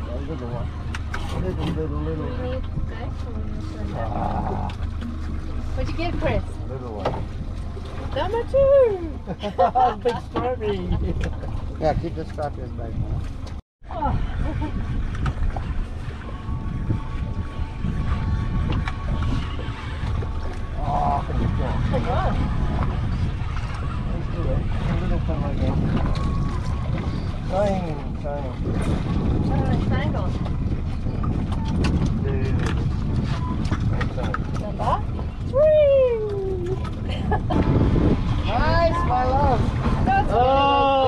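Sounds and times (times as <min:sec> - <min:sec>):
wind and water rumble: 0:00.0 - 0:41.0.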